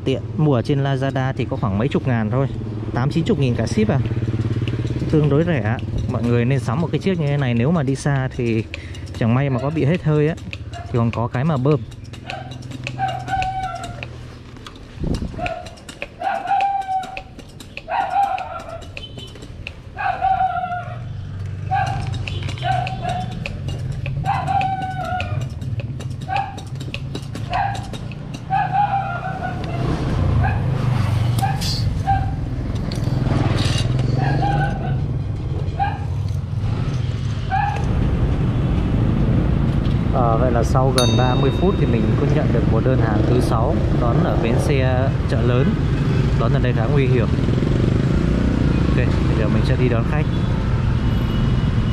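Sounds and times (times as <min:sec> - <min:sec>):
hand pump squeaking: 0:03.4 - 0:20.3, 0:21.1 - 0:29.8, 0:40.9 - 0:42.7.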